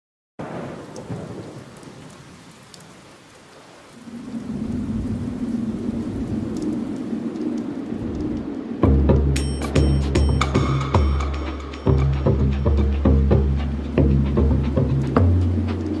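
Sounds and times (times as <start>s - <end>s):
thunder clap: 0.4s - 2.2s, 4.0s - 16.0s
low rolling thunder: 0.4s - 3.0s, 3.6s - 16.0s
steady rain: 0.4s - 16.0s.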